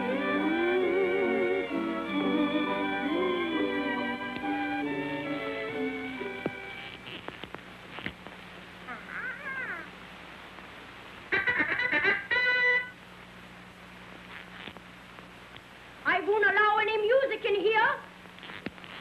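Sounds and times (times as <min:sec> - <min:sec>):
orchestral cartoon music: 0:00.0 - 0:06.8.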